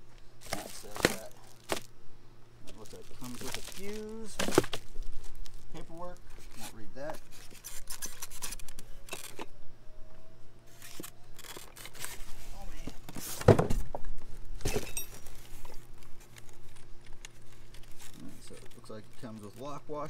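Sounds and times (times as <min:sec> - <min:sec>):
cardboard and styrofoam rustling: 0:00.4 - 0:01.9, 0:02.6 - 0:09.4, 0:10.7 - 0:19.8.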